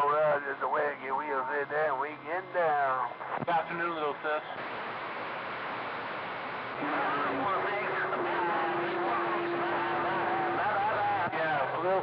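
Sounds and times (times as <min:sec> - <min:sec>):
voice over radio receiver: 0:00.0 - 0:04.6, 0:06.8 - 0:12.0
radio static hiss: 0:00.0 - 0:12.0.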